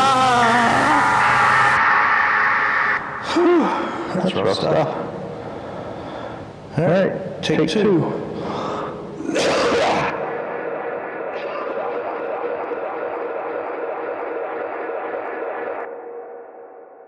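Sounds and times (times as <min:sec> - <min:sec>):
electronic drone: 0:00.0 - 0:03.5, 0:09.2 - 0:17.0.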